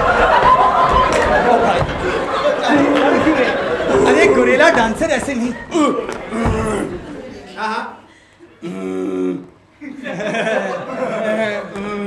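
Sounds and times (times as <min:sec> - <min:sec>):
men talking over one another: 0:02.6 - 0:07.0.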